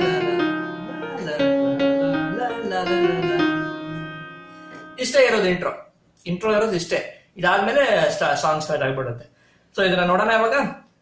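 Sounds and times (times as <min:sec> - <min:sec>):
electronic keyboard melody: 0:00.0 - 0:05.6.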